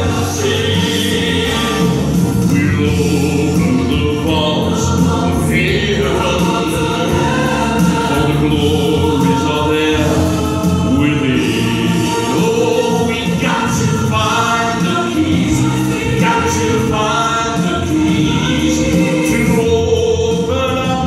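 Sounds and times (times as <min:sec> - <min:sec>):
backing track with choir voices: 0:00.0 - 0:21.0
man singing ballad into microphone: 0:00.1 - 0:07.3, 0:08.0 - 0:21.0.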